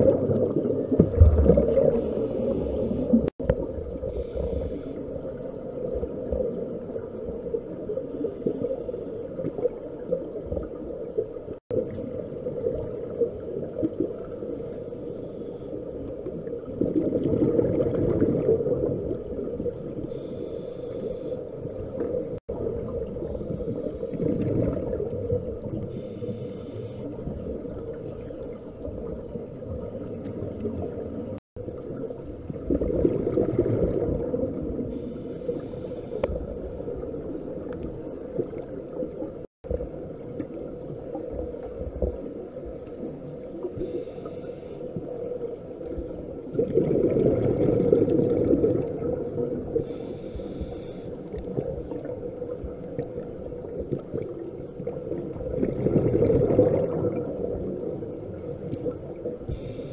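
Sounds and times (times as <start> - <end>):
gurgle of exhaled bubbles: 0.0 - 4.6, 16.1 - 20.1, 21.9 - 26.0, 27.2 - 35.0, 45.8 - 50.0, 51.3 - 59.5
steady underwater drone: 0.0 - 59.9
scuba regulator breathing hiss: 1.9 - 3.2, 4.1 - 5.0, 20.1 - 21.4, 26.0 - 27.1, 34.9 - 36.2, 43.8 - 44.9, 49.8 - 51.1, 59.5 - 59.9.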